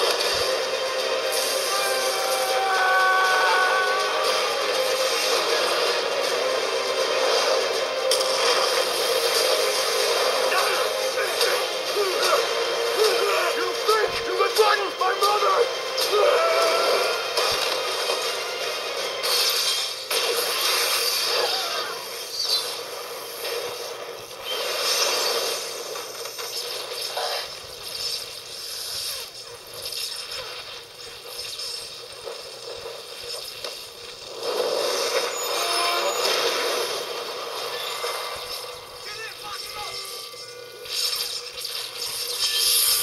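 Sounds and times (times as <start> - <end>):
movie dialogue: 0.0 - 43.0
movie music on tv speaker: 0.0 - 43.0
movie sound effects: 0.0 - 43.0.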